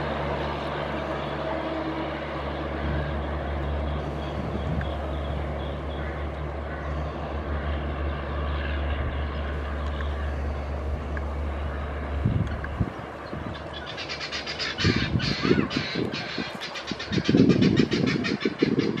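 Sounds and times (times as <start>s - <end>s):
distant train drone: 0.0s - 19.0s.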